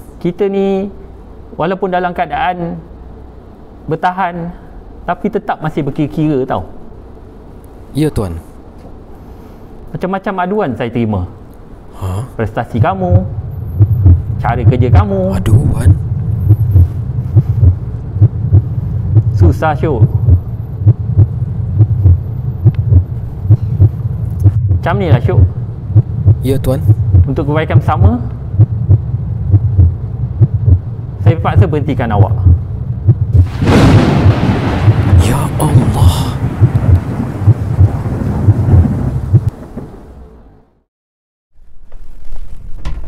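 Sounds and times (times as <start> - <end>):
noisy hiss: 0.0 - 38.2
steady low hum: 0.0 - 40.8
heartbeat thumps: 12.8 - 31.0, 31.6 - 33.5, 34.1 - 35.9, 36.5 - 39.5
thunder rumbling: 32.5 - 40.6.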